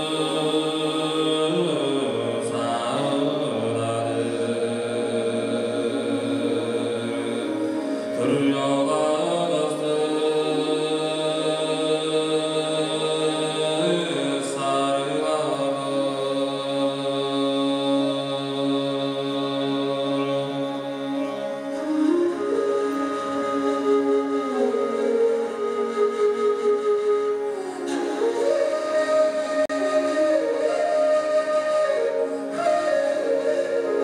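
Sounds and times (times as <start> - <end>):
throat singing drone: 0.0 - 34.0.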